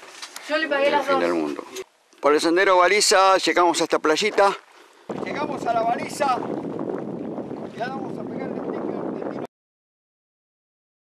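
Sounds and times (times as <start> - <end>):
wind buffeting microphone: 5.0 - 9.5.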